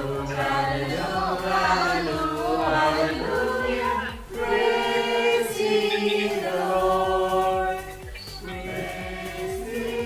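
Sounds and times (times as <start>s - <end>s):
group singing unaccompanied: 0.0s - 10.0s.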